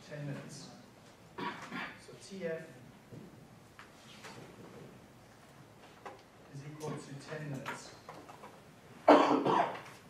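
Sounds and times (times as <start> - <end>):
person coughing: 1.4 - 2.0, 9.1 - 9.9.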